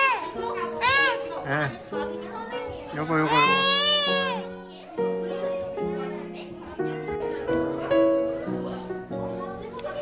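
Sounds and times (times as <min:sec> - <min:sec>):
background music with held notes: 0:00.0 - 0:10.0
toddler squealing: 0:03.3 - 0:04.5.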